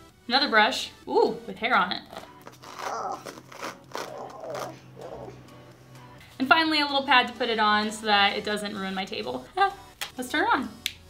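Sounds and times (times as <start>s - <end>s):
hair ripping from brush bristles: 2.2s - 4.8s.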